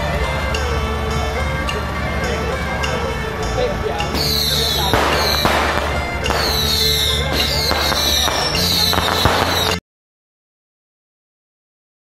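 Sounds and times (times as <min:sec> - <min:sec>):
procession music: 0:00.0 - 0:09.8
firecrackers crackling: 0:04.0 - 0:09.8
falling high whistles: 0:04.1 - 0:09.8.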